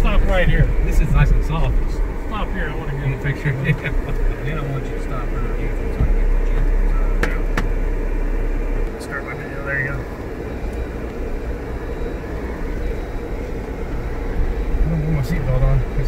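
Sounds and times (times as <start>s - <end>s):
truck engine and tyre rumble: 0.0s - 16.0s.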